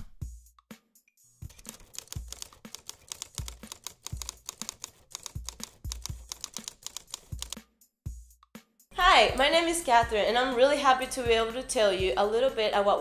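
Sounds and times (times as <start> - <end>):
rapid keyboard typing: 1.4 - 7.6.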